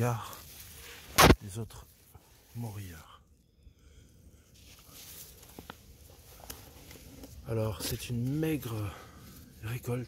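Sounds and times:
twigs clicking: 5.3s - 8.8s.

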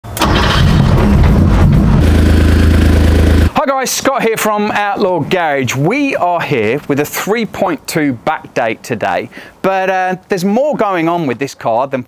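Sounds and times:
car engine starting and running: 0.0s - 3.6s
person speaking: 3.5s - 12.0s.

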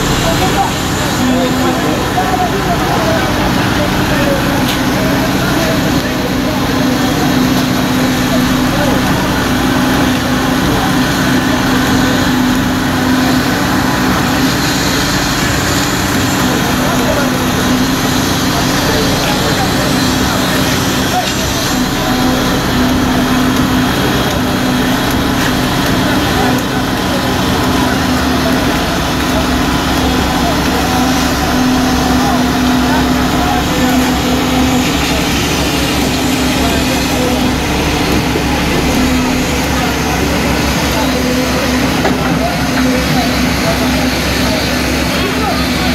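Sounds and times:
construction machinery engine: 0.0s - 45.9s
workers' voices: 0.0s - 45.9s.

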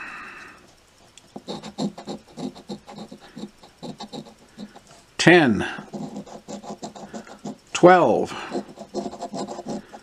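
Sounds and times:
coin scraping scratch ticket: 1.3s - 4.8s, 5.8s - 7.6s, 8.5s - 10.0s.

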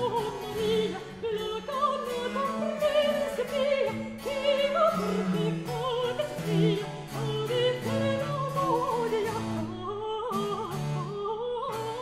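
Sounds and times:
soprano singing with vibrato: 0.0s - 12.0s.

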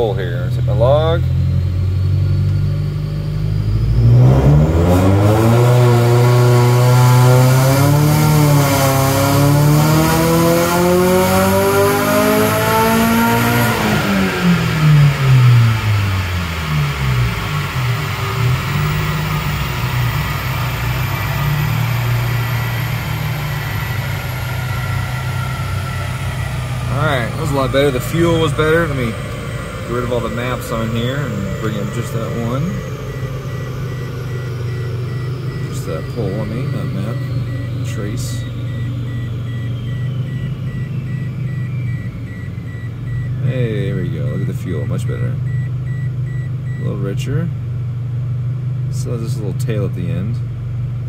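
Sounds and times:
car engine revs falling: 0.0s - 47.5s
high electronic beeps: 18.1s - 46.9s.

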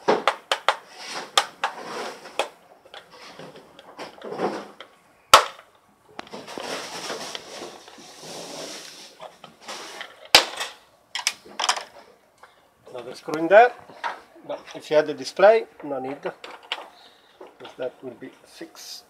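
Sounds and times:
plastic scraping and handling: 0.0s - 15.0s.

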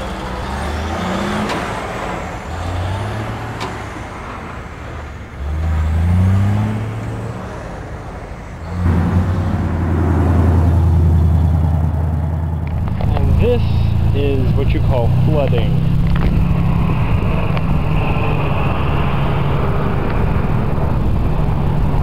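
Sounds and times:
diesel truck engine revving: 0.0s - 22.0s
vehicle engine drone: 0.0s - 22.0s.

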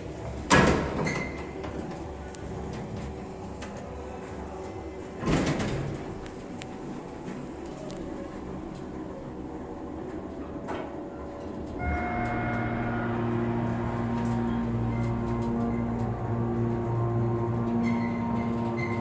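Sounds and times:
elevator hum of several tones: 0.0s - 19.0s
sliding elevator door clunk: 5.1s - 9.0s.

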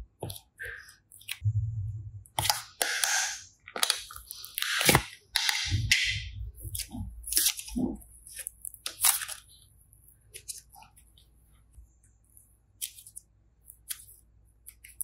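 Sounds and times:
slime crackling and squishing: 6.5s - 11.2s.

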